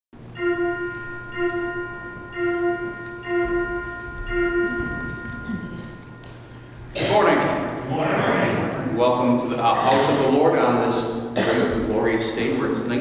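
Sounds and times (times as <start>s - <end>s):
bell struck ringing: 0.2s - 6.8s.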